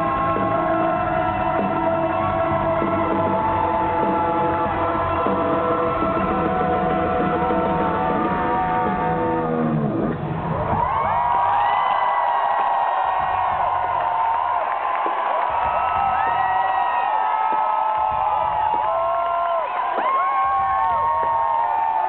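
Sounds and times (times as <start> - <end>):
band music: 0.0 - 10.8
concert crowd cheering and screaming: 0.0 - 22.0.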